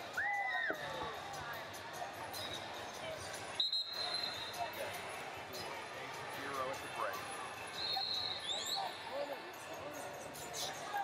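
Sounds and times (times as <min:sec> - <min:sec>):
referee's whistle: 0:03.6 - 0:04.6, 0:07.8 - 0:08.8.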